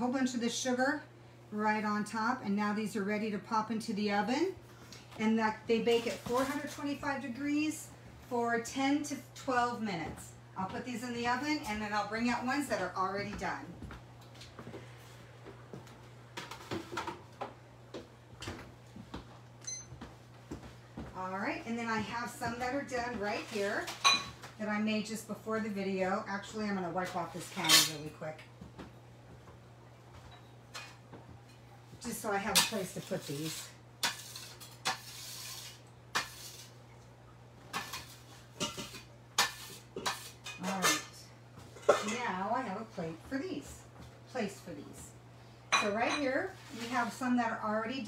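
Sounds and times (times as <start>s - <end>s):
metal bowl and utensils clinking: 27.4s - 28.1s, 32.3s - 35.6s, 37.8s - 41.2s, 41.8s - 42.3s
metal scraper scraping stone countertop: 32.6s - 36.7s, 39.4s - 40.8s.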